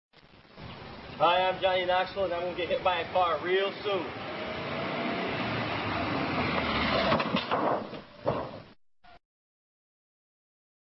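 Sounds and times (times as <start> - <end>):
car hitting a person: 6.5 - 8.7.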